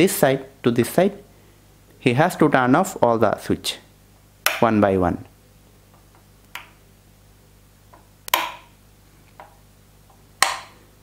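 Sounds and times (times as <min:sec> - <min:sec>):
wall switches clicking: 0:04.4 - 0:04.7, 0:07.9 - 0:08.7, 0:10.4 - 0:10.8.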